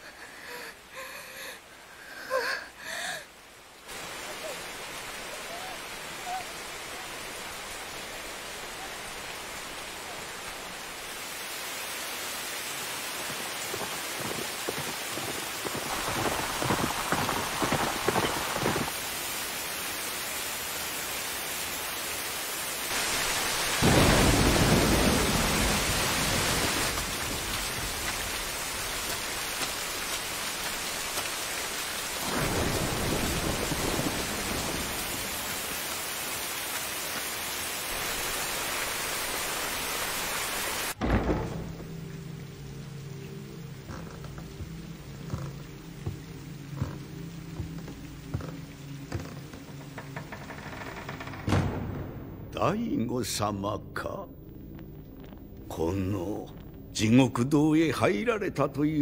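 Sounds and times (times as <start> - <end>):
heavy rain: 0.0 - 59.0
thunder rolling: 23.8 - 28.9, 32.2 - 35.5, 51.5 - 53.1.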